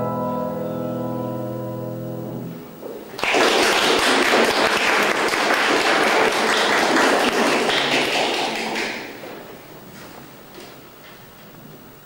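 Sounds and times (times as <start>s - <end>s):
piano: 0.0s - 6.2s
audience applauding: 3.1s - 9.5s.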